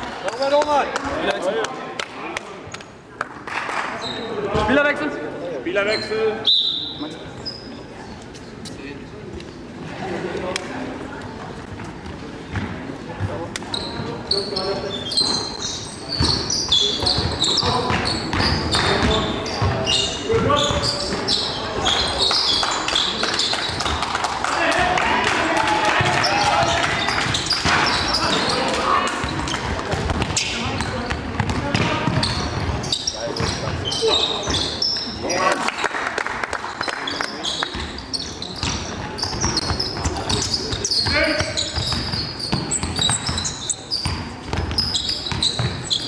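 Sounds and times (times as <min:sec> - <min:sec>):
sneakers squeaking on court: 0:03.9 - 0:04.9, 0:05.8 - 0:09.7, 0:11.3 - 0:24.0, 0:25.9 - 0:35.3, 0:36.7 - 0:46.0
players calling out: 0:13.7 - 0:35.8
basketball bouncing on floor: 0:17.2 - 0:19.8, 0:29.3 - 0:33.8, 0:38.6 - 0:45.8.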